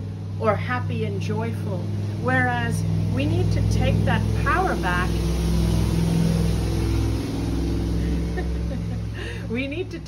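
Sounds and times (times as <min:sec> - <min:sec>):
vehicle engine running loudly: 0:00.0 - 0:10.0.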